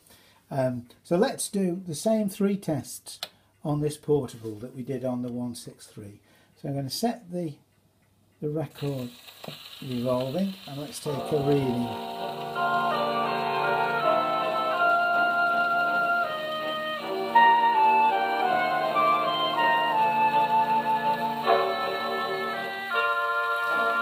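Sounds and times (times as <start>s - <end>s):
gramophone playing instrumental music: 11.0s - 24.0s.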